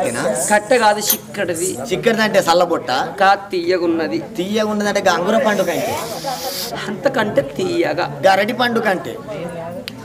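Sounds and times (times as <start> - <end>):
sustained hiss: 5.1 - 6.9
voices chanting and singing: 5.1 - 6.9.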